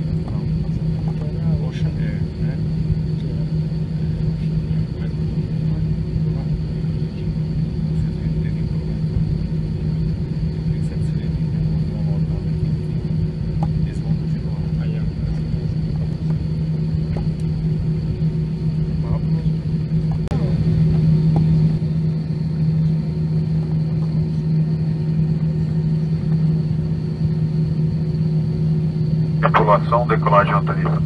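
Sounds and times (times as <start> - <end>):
aircraft cabin engine hum: 0.0 - 31.0.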